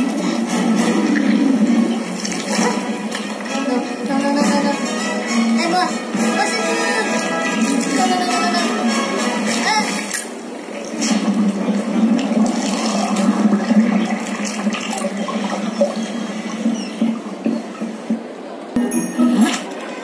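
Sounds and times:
rushing water sound effect: 0.0 - 4.2, 5.1 - 18.4
music: 0.0 - 10.1, 18.8 - 20.0.

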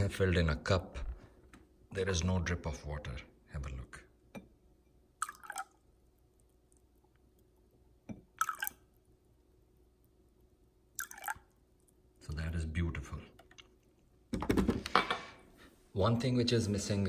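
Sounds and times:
water pouring into a glass: 5.2 - 5.8, 8.3 - 8.9, 11.0 - 11.5.

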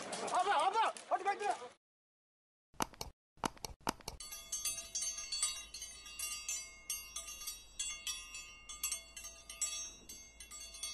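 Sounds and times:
tinkling wind chimes: 4.2 - 10.9.

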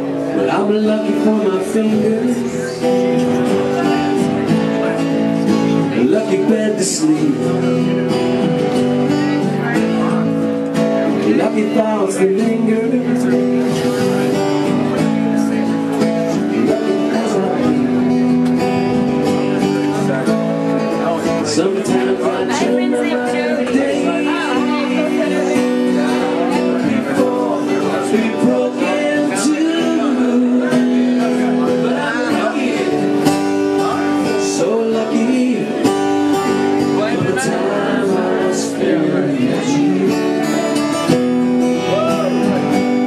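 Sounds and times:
man singing into microphone: 0.0 - 4.3, 5.6 - 8.2, 11.0 - 18.4, 20.9 - 41.1
acoustic guitar chords: 0.0 - 43.0.

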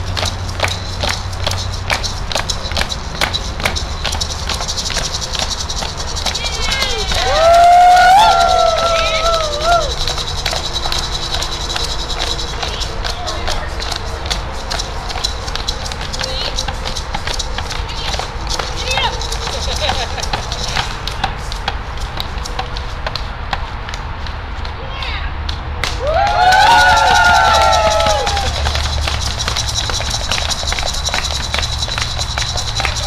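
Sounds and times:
indistinct voices: 0.0 - 22.7, 25.9 - 33.0.

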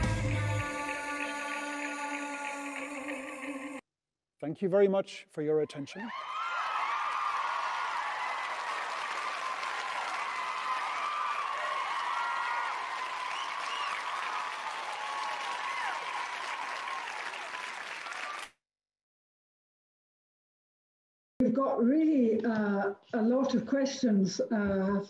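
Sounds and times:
audience applauding: 6.1 - 18.6.

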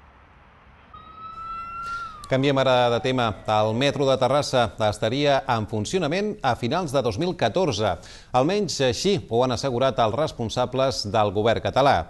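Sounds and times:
low background noise: 0.0 - 12.0
wailing siren-like tone: 0.9 - 4.8.

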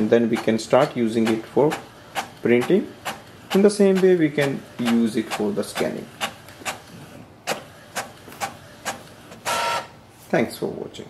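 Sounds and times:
printer mechanism clacking: 0.0 - 10.0
printer paper feed whir: 0.0 - 10.0.

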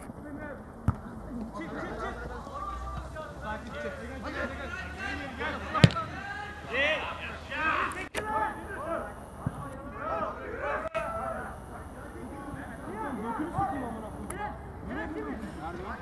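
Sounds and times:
voices shouting: 1.4 - 16.0
sharp thump: 5.8 - 6.1.

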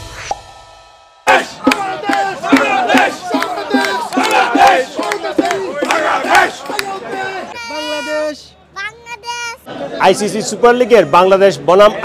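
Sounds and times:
drum beats: 0.0 - 8.0
crowd chanting rhythmic shouts: 1.2 - 8.1.

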